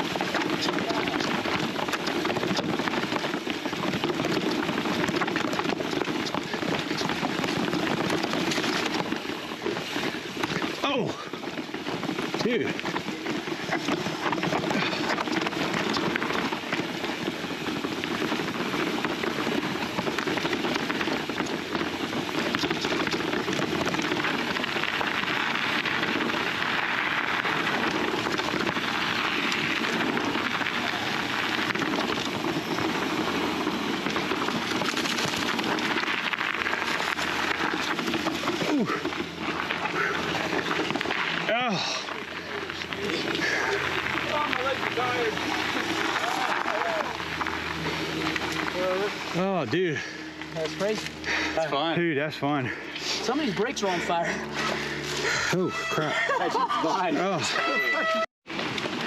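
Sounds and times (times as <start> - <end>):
bike tyres crunching over stones and leaves: 0.0 - 59.0.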